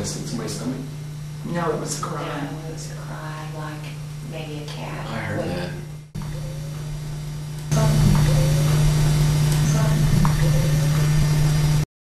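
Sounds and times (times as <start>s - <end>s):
low electrical hum: 0.0s - 11.9s.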